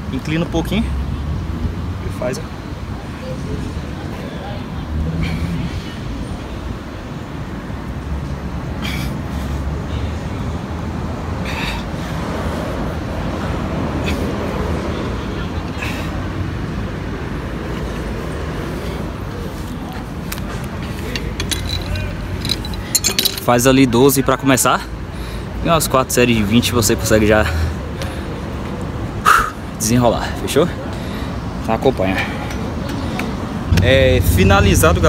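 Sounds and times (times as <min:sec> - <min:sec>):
traffic rumble: 0:00.0 - 0:35.0
faint voices: 0:14.0 - 0:23.5
wind noise: 0:33.3 - 0:35.0.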